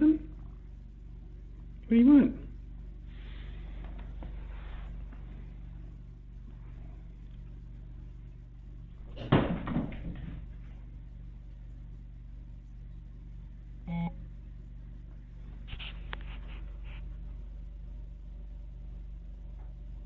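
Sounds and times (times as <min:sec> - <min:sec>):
steady low hum: 0:00.0 - 0:20.0
camera thump and rustle: 0:15.6 - 0:16.7.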